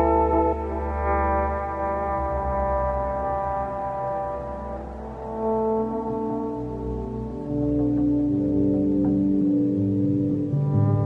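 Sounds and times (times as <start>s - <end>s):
electric bass: 0.0s - 11.0s
electric guitar sustained notes: 0.0s - 11.0s.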